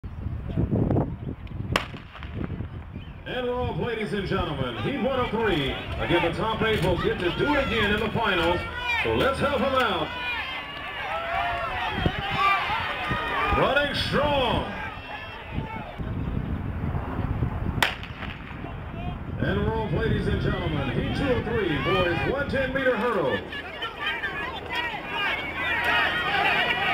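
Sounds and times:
starter's pistol shot: 0:01.8 - 0:02.4, 0:17.8 - 0:18.6.

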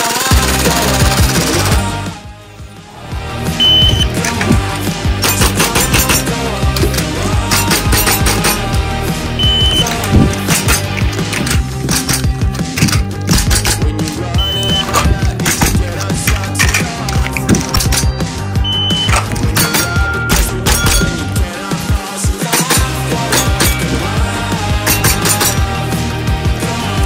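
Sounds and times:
background music with steady beat: 0:00.0 - 0:27.0
short high beeps: 0:03.6 - 0:04.2, 0:09.4 - 0:09.9, 0:14.4 - 0:14.9, 0:18.7 - 0:19.2.

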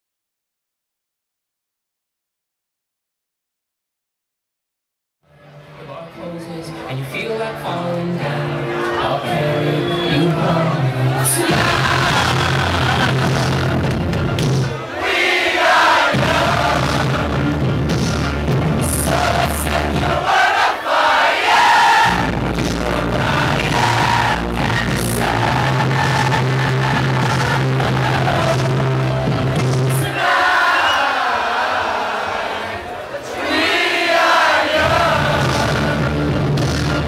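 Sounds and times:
crowd shouting and singing: 0:05.3 - 0:37.0
loud electronic dance music: 0:07.8 - 0:20.4, 0:21.8 - 0:30.4, 0:34.8 - 0:37.0.

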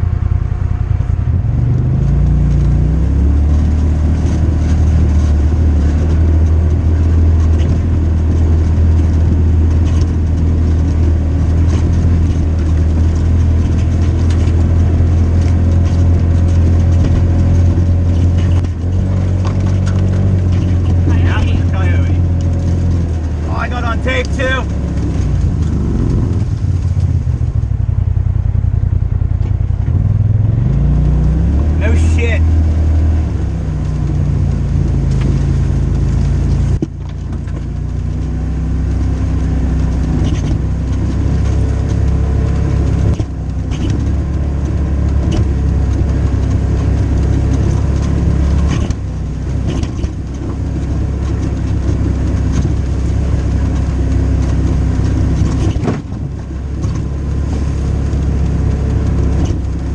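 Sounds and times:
dirt bike engine revving: 0:16.9 - 0:26.8.

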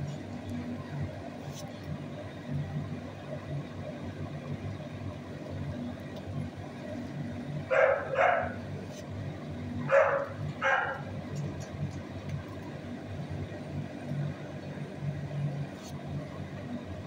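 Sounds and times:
steady low hum: 0:00.0 - 0:17.0
dog barking: 0:07.7 - 0:08.6, 0:09.8 - 0:11.1.

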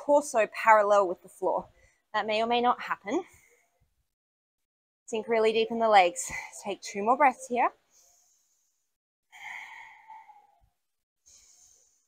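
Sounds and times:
woman breathing through mouth: 0:07.9 - 0:12.0.

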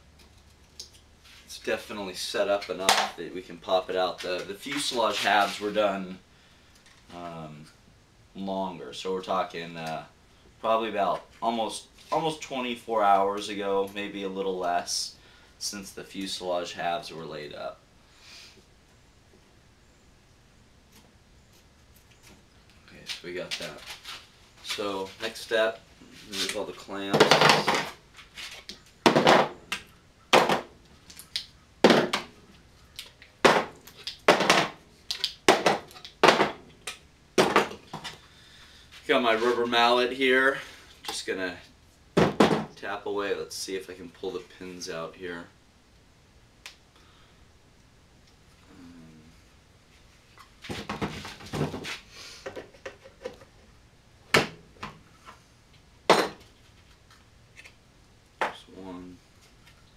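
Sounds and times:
sharp hard knocks: 0:29.0 - 0:30.7, 0:31.8 - 0:32.3, 0:33.4 - 0:34.8, 0:35.5 - 0:36.6, 0:37.4 - 0:38.1, 0:42.2 - 0:42.7.

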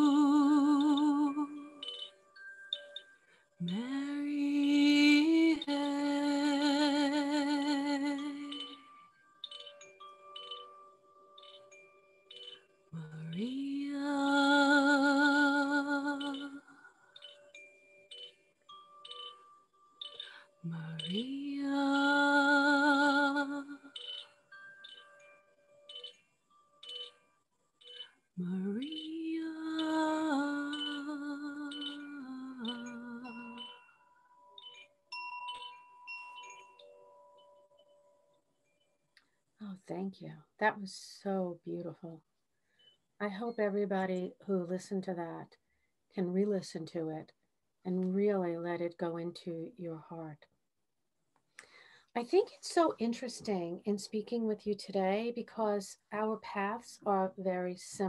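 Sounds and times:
bamboo wind chime ringing: 0:00.0 - 0:39.1
person humming: 0:20.6 - 0:23.8, 0:28.4 - 0:33.7.

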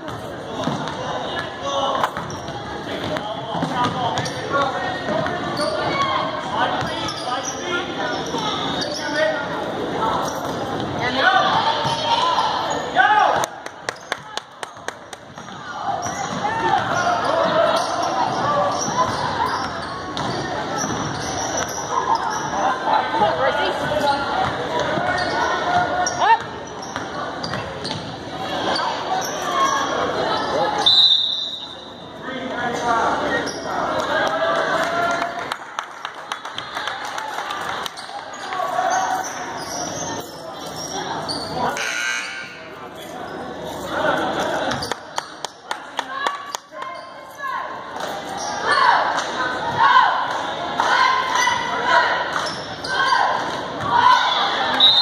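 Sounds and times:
basketball bouncing on court: 0:00.0 - 0:01.1, 0:02.0 - 0:05.5, 0:15.2 - 0:17.0, 0:18.3 - 0:21.7
referee's whistle: 0:30.8 - 0:32.0, 0:54.3 - 0:55.0.

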